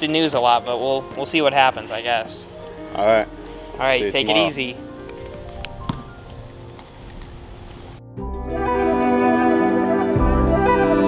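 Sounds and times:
background film music: 0:00.0 - 0:11.0.

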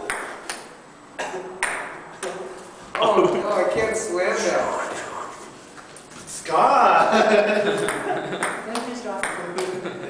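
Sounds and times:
ping pong ball clicking: 0:07.9 - 0:09.8.

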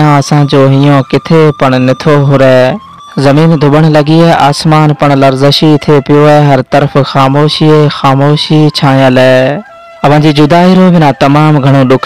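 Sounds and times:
faint steady tones: 0:00.0 - 0:12.0
man reciting: 0:00.0 - 0:12.0.

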